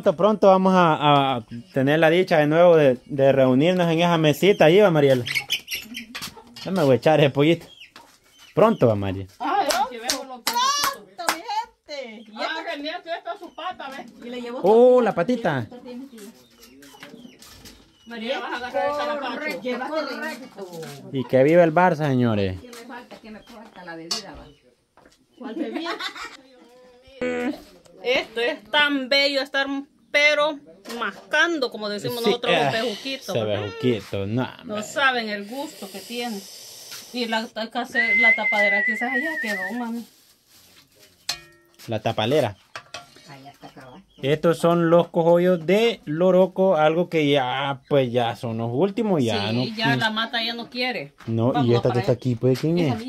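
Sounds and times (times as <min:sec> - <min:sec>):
faint background voices: 0:22.6 - 0:29.6
bird calling: 0:37.9 - 0:39.9
metal spoon clinking on pot: 0:41.2 - 0:41.8.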